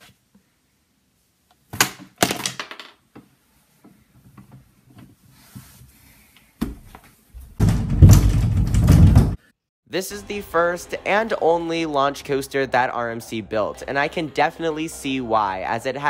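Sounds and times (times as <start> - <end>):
knocks on wooden closet doors: 7.6 - 9.4.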